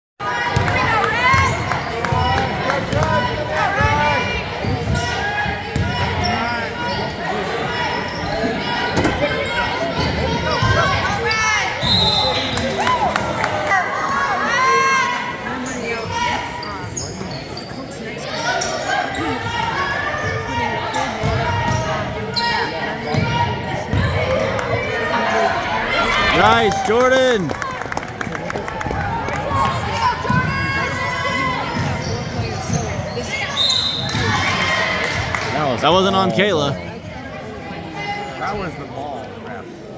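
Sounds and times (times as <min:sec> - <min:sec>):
sneakers squeaking: 0:04.6 - 0:12.7, 0:15.6 - 0:20.3, 0:31.5 - 0:34.8.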